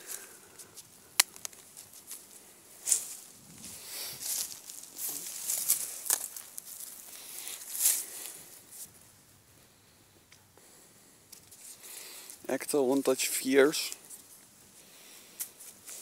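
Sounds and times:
dry grass and leaves rustling: 0.0 - 16.0.

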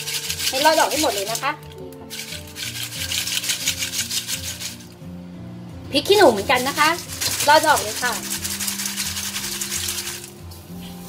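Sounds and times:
dried chillies shaken in a colander: 0.0 - 4.9, 6.3 - 11.0.

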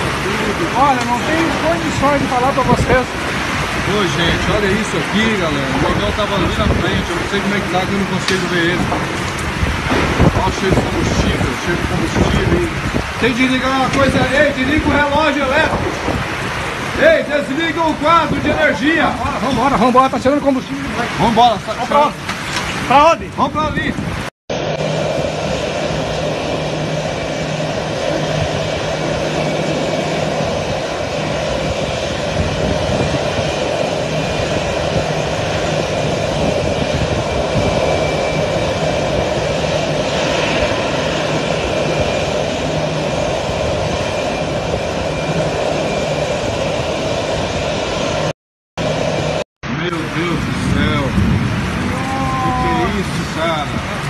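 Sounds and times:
aircraft engine droning with whine: 0.0 - 54.0.

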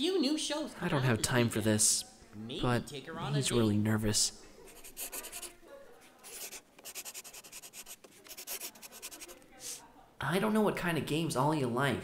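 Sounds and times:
pen scratching on paper: 4.7 - 5.6, 6.2 - 9.4.

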